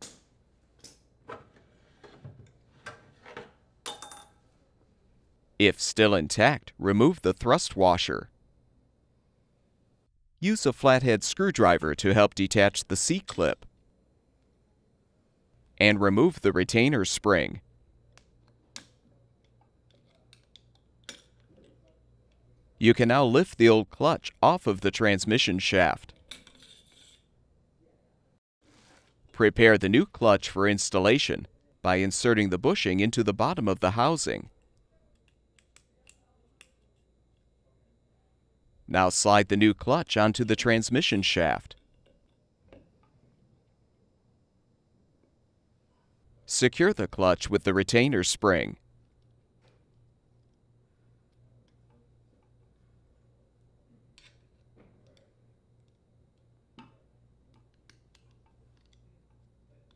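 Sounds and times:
metallic clink and scrape: 26.3 - 27.3.

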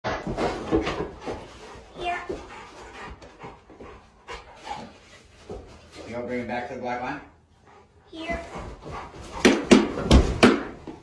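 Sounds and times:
large dog panting: 0.2 - 5.9, 7.3 - 9.8.

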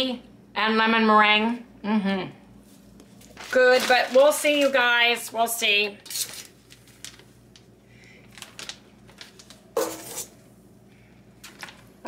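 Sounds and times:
metal spoon scraping steel bowl: 9.8 - 10.3.

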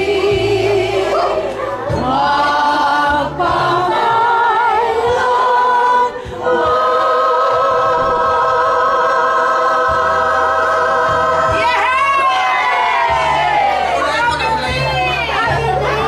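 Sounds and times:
group singing in unison: 0.0 - 14.0.

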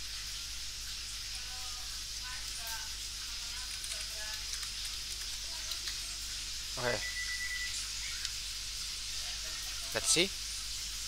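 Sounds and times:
keyboard clicks: 3.6 - 6.0
microphone hiss: 5.8 - 11.0.

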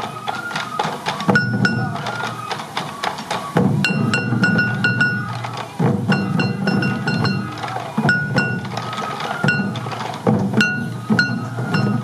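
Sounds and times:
bamboo flute melody: 0.0 - 12.0
hand drums beaten: 0.0 - 12.0.

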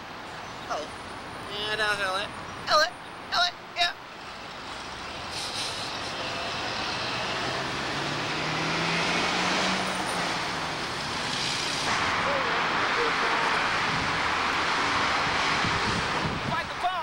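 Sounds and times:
passing cars and trucks: 0.0 - 17.0.

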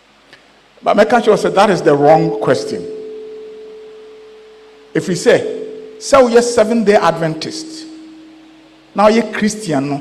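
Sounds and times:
steady pure ringing tone: 0.0 - 10.0
faint lower tones: 2.2 - 10.0.

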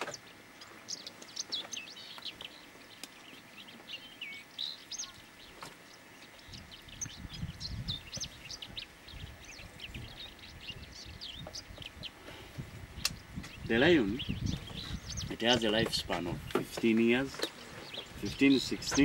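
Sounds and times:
birds chirping and whistling: 0.0 - 19.0.

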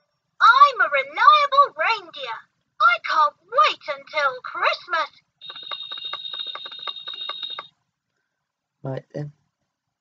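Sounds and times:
toy speaker high tone: 3.8 - 7.7
fast run of clicks: 5.4 - 7.7.

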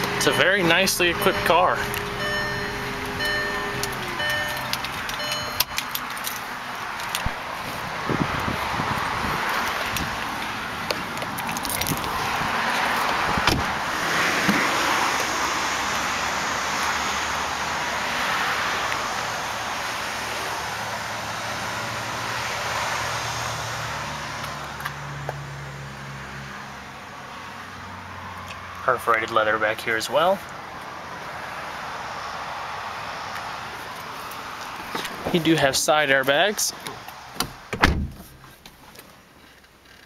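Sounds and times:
car rushing past: 12.1 - 24.4
car door clicks: 13.0 - 13.7, 37.4 - 38.4.

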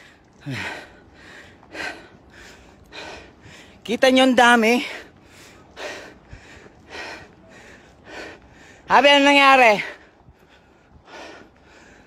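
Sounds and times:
man breathing hard: 0.0 - 3.8, 4.9 - 8.9, 9.8 - 12.0.

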